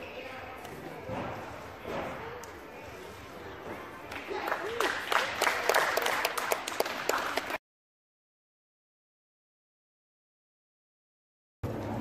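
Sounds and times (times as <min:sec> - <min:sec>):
crowd clapping: 0:04.1 - 0:07.6.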